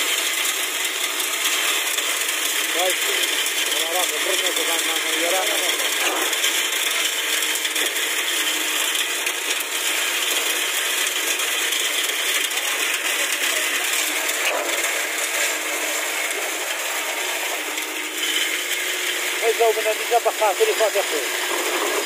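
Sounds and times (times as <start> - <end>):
concrete pump rushing: 0.0 - 22.0.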